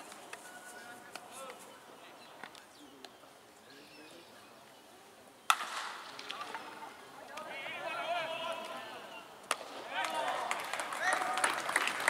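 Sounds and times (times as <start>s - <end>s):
bat cracking against ball: 5.5s - 6.7s, 9.4s - 10.2s.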